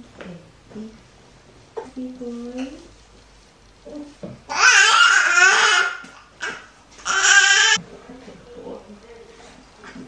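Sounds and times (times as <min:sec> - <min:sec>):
baby crying: 0:04.5 - 0:07.8.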